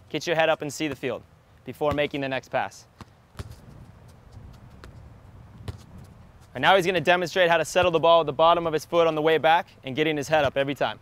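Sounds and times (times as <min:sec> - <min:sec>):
faint outdoor background: 0:00.0 - 0:11.0
foot kicking soccer ball: 0:01.8 - 0:02.2, 0:03.0 - 0:06.6, 0:07.6 - 0:08.1.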